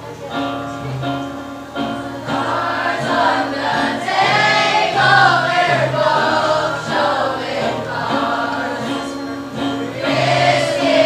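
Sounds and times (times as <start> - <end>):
children's choir singing: 1.6 - 11.0.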